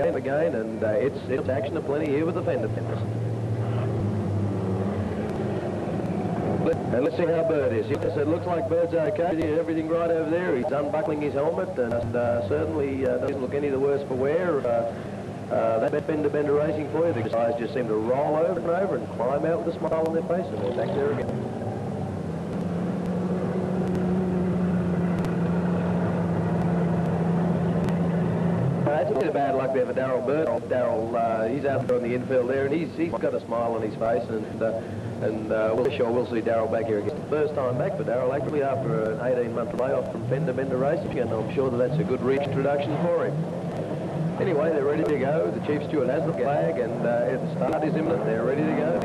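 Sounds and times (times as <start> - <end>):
race car engines droning: 0.0 - 49.0.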